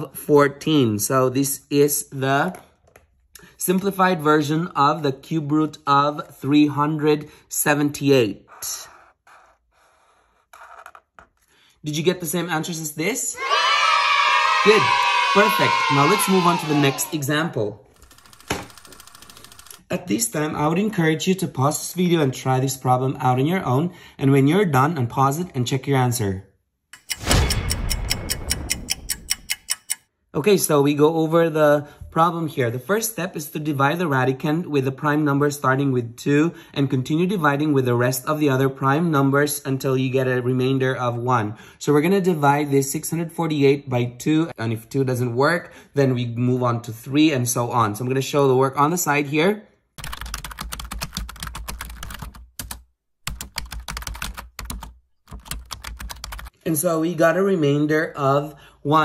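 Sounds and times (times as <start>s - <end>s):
pen writing on paper: 8.5s - 11.4s
rapid clock-like ticking: 27.0s - 30.0s.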